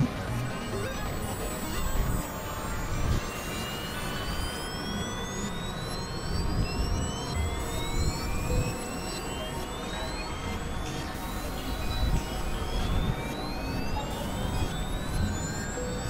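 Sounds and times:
rising whistling tones: 0.6s - 16.0s.

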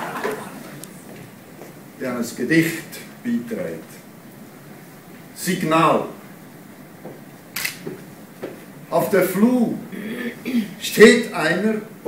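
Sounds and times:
man talking: 2.0s - 4.1s, 5.4s - 6.2s, 8.9s - 12.0s
sharp click: 7.6s - 7.9s.

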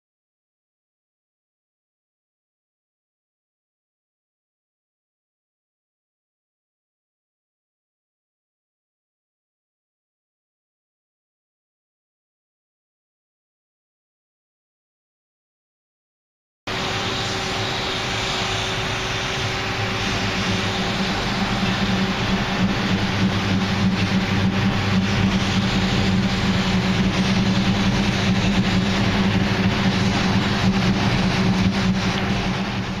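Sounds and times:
car engine at high revs: 16.7s - 33.0s.

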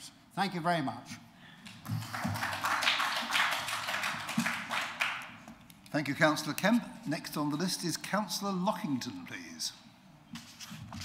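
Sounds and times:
applause and desk raps: 1.6s - 6.8s.

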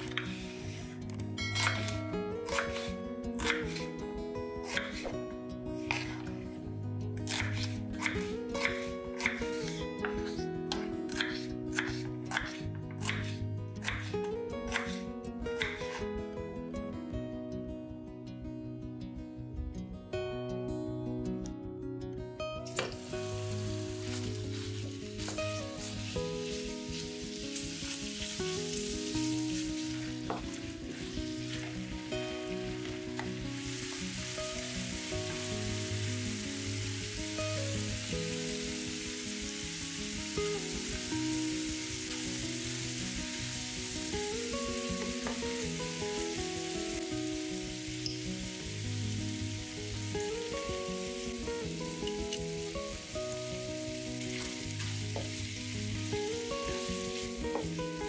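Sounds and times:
background music: 0.0s - 58.0s
meat sizzling in oil: 22.8s - 58.0s.

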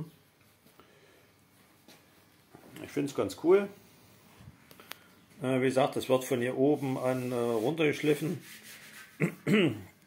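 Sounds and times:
man speaking: 2.7s - 3.8s, 5.4s - 8.4s.

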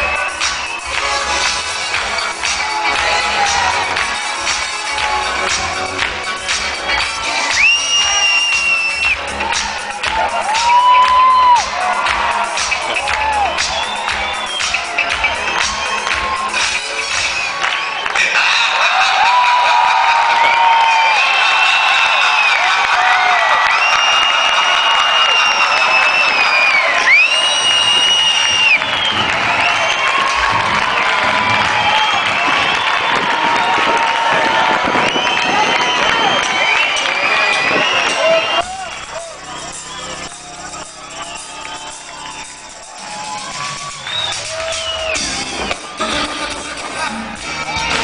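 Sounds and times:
crowd cheering: 0.0s - 48.0s
live band music with heavy beat: 37.8s - 48.0s.

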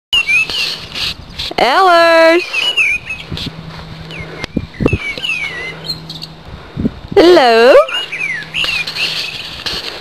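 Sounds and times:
birds chirping: 0.2s - 10.0s.

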